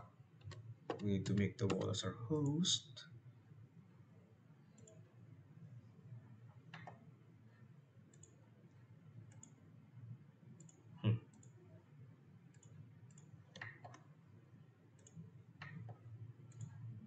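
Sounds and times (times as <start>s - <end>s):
computer mouse clicks: 0.4s - 1.9s, 4.8s - 5.0s, 6.7s - 7.0s, 8.1s - 8.4s, 9.3s - 9.6s, 10.6s - 11.6s, 12.5s - 14.1s, 15.0s - 16.9s.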